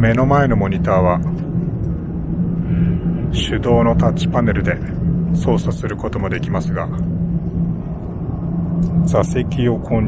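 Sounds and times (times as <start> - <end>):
airliner cabin rumble: 0.0 - 10.0
constant low hum: 0.0 - 10.0.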